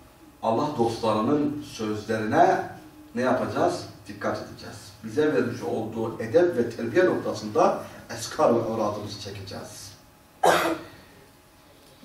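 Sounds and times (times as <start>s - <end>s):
person coughing: 10.4s - 11.0s.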